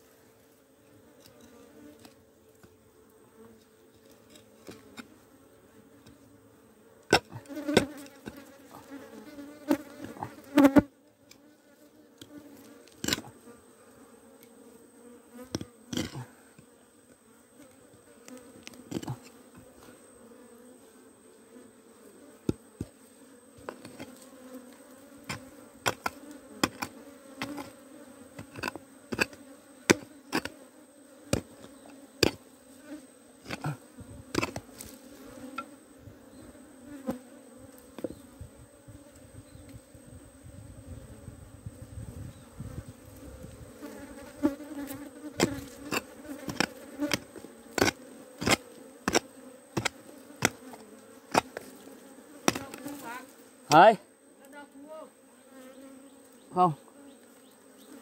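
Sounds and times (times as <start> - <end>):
honeybees buzzing: 0.0 - 58.0
metal blade chopping earth: 7.1 - 8.4, 13.0 - 13.3, 15.5 - 16.2, 18.9 - 19.2, 23.7 - 24.2, 25.2 - 27.8, 28.4 - 30.6, 31.3 - 32.4, 33.4 - 34.9, 45.4 - 51.7, 52.4 - 52.9.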